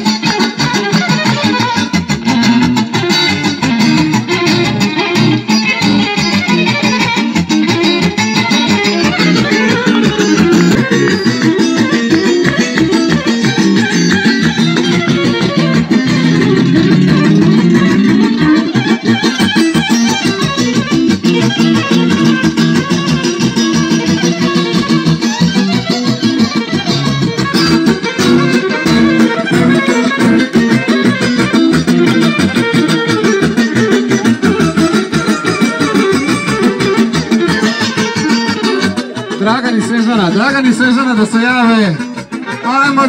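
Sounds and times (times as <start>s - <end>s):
fast dance music with guitar lead: 0.0s - 43.0s
man making an announcement: 39.2s - 43.0s.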